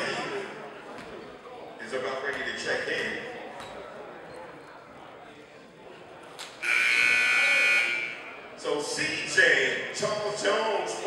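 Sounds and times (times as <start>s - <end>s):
scoreboard horn buzz: 6.6s - 8.4s.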